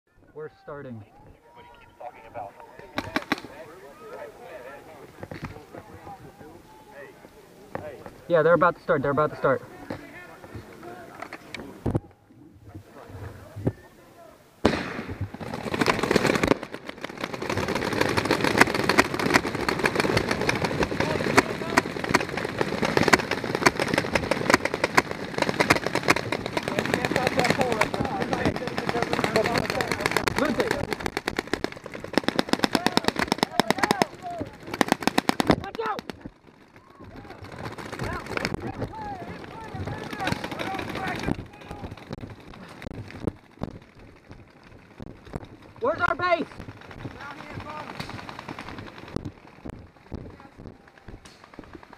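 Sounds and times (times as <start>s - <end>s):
paintball markers firing: 2.8s - 3.6s, 14.7s - 43.3s, 46.5s - 51.9s.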